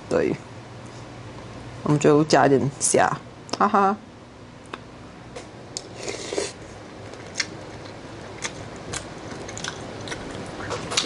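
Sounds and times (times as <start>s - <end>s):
person chewing noodles: 5.8s - 11.0s.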